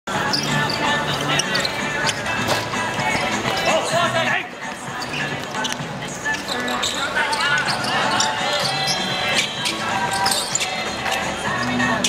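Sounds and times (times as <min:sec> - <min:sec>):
people talking and calling out: 0:00.1 - 0:12.0.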